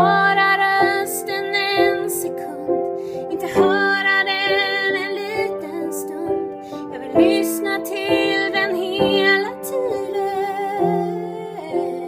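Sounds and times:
woman singing a slow song: 0:00.0 - 0:12.0.

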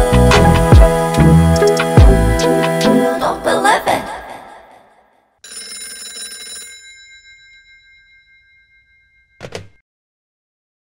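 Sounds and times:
background music: 0:00.0 - 0:04.3
bell ringing: 0:05.4 - 0:09.8.

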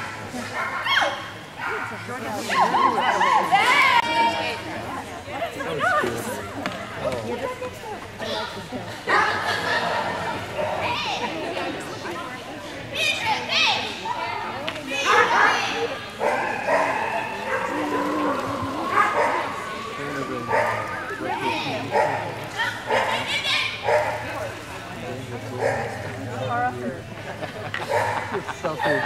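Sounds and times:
people talking: 0:01.6 - 0:29.0
dog barking: 0:16.2 - 0:17.7, 0:21.9 - 0:22.2, 0:22.9 - 0:24.2, 0:27.9 - 0:28.3.

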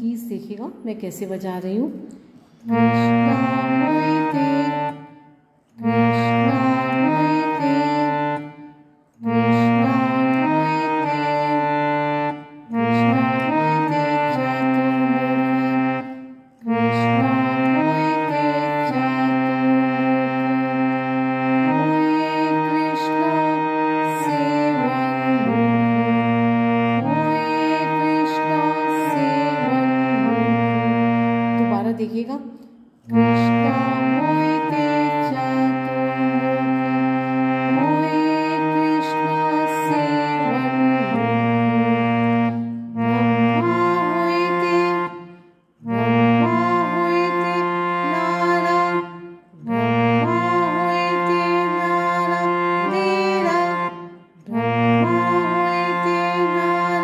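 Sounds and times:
harmonium chords: 0:01.4 - 0:57.0.

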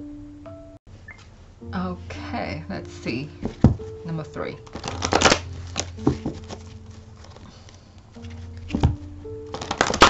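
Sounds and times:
cards being handled: 0:04.6 - 0:10.0
cards tapping and clicking: 0:04.6 - 0:10.0.

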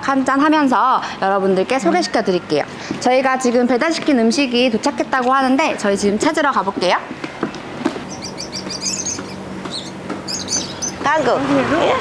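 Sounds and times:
steady low hum: 0:00.0 - 0:12.0
small birds chirping: 0:05.8 - 0:12.0.

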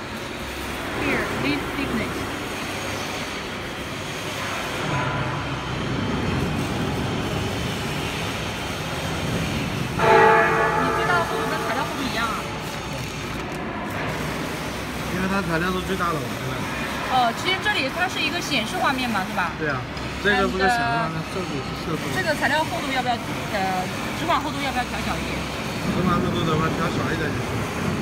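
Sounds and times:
machine shop hum: 0:00.0 - 0:28.0
loud held multi-pitch tone: 0:10.0 - 0:12.7.

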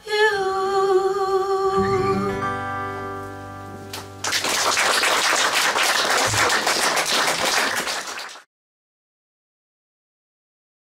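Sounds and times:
audience applauding: 0:03.9 - 0:08.5.

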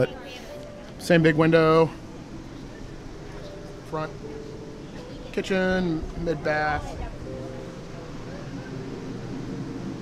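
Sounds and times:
even background noise: 0:00.0 - 0:10.0
faint voices: 0:00.0 - 0:10.0.

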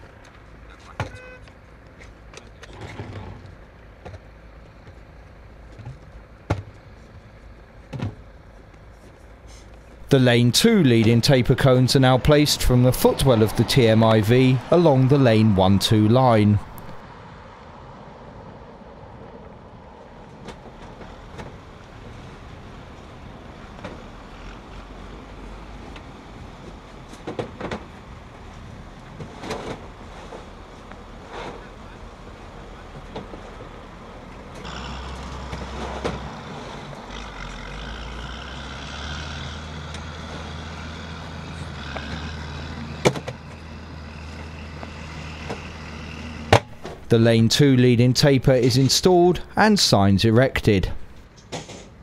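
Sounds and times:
vehicle engine rumble: 0:00.0 - 0:52.0.

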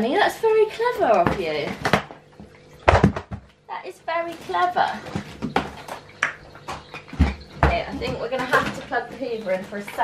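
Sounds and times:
heavy thumps: 0:01.0 - 0:03.6, 0:04.5 - 0:10.0
vacuum hose knocking and clattering: 0:02.8 - 0:03.6, 0:06.6 - 0:10.0.

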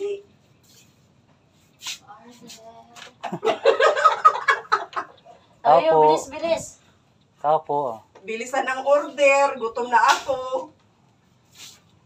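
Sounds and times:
woman talking: 0:00.0 - 0:00.3, 0:05.6 - 0:06.8, 0:08.2 - 0:10.8
women laughing loudly: 0:03.2 - 0:05.2.

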